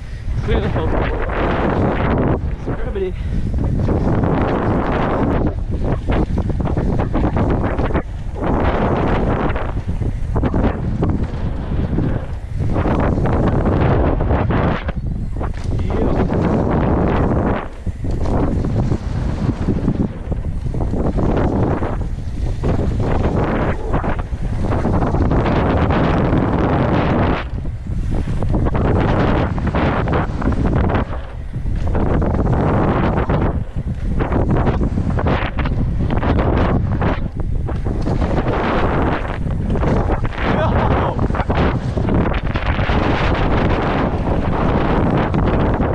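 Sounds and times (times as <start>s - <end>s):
bike riding noise on gravel: 0.0s - 45.9s
wind buffeting microphone: 0.0s - 45.9s.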